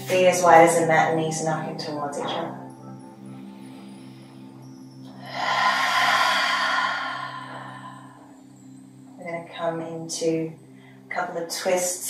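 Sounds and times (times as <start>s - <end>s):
soft background music drone: 0.0s - 12.0s
breathy sighing exhale: 5.2s - 8.6s.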